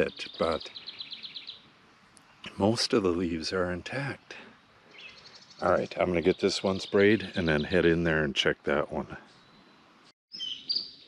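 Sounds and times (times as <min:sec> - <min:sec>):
high bird chirps: 0:00.0 - 0:02.5, 0:04.9 - 0:07.9, 0:09.3 - 0:11.0
faint background noise: 0:00.0 - 0:10.1.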